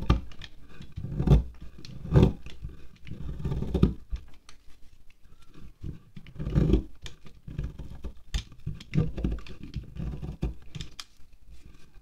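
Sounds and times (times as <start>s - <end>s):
wax crackling and crumbling: 0.0s - 12.0s
knife scraping wax candle: 0.1s - 4.1s, 5.2s - 12.0s.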